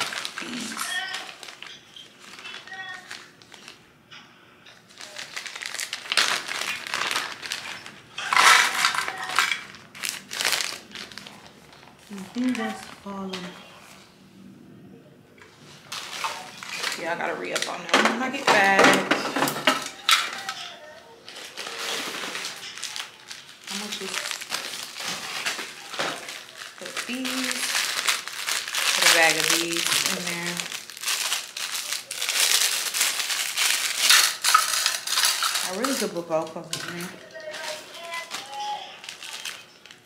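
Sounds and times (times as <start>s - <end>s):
plastic bag crinkling: 0.0s - 3.9s, 4.7s - 14.0s, 15.6s - 40.0s
plastic pieces clattering in tray: 5.0s - 11.4s, 15.9s - 20.7s, 21.3s - 40.0s.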